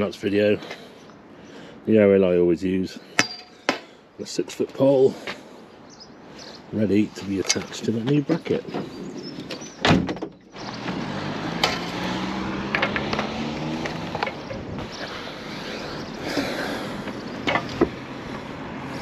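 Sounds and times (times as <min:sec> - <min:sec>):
knocks and clicks: 0:12.7 - 0:14.7.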